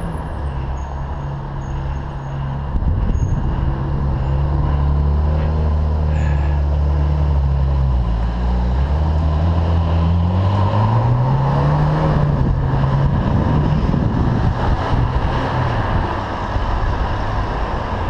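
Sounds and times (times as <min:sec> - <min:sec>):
car engine droning at low revs: 0:00.0 - 0:18.0.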